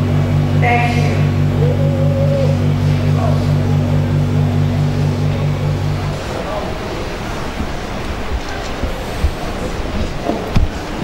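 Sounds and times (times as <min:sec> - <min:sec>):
low pulsing hum: 0:00.0 - 0:11.0.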